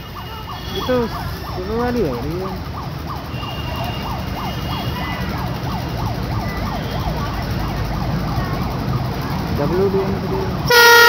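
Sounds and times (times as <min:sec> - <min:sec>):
electronic siren yelping: 0:00.0 - 0:09.6
diesel locomotive rumble: 0:00.0 - 0:11.0.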